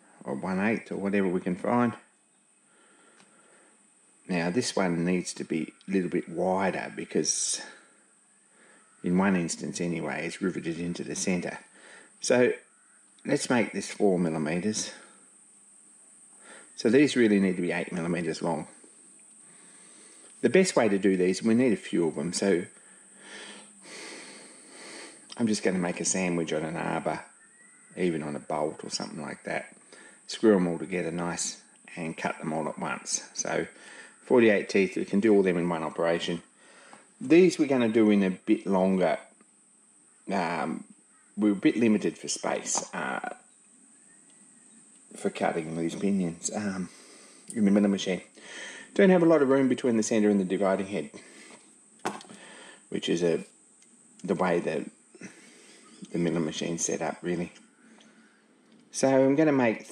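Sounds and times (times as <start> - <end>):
faint room noise: 0.0 - 59.9
soft breathing: 2.6 - 3.9, 7.6 - 9.0, 11.7 - 12.2, 16.3 - 16.8, 18.7 - 20.4, 22.7 - 25.3, 29.8 - 30.3, 33.7 - 34.2, 36.5 - 37.2, 46.8 - 47.6, 48.3 - 49.0, 51.1 - 52.9, 55.2 - 56.1, 57.7 - 58.6.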